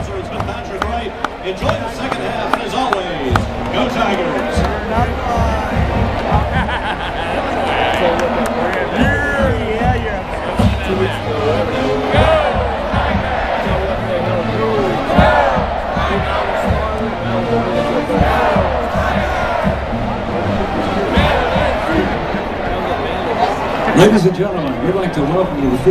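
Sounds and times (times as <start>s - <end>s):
crowd talking and shouting: 0.0s - 25.9s
music: 0.0s - 25.9s.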